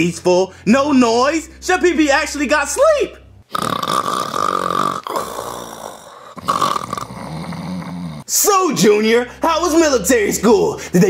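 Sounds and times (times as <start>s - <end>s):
person snoring: 3.4s - 8.3s.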